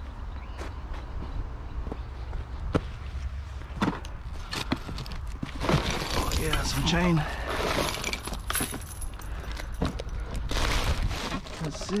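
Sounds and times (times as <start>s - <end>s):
junk clattering and rattling: 3.8s - 12.0s.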